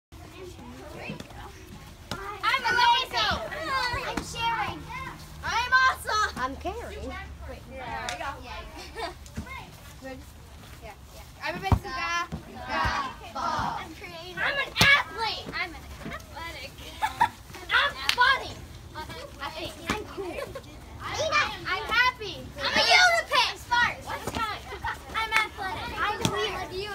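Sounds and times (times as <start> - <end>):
girls calling out and chattering: 0.2 - 26.9.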